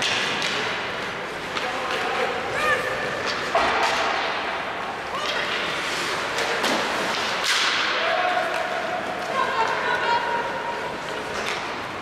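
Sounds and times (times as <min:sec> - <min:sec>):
sharp crack echoing in arena: 0:00.0 - 0:00.9, 0:03.2 - 0:04.6, 0:06.3 - 0:08.8.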